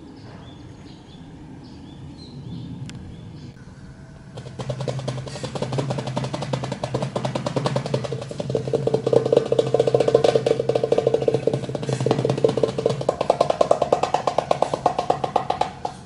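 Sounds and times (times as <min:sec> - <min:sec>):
goblet drum played by hand: 0:04.4 - 0:16.0.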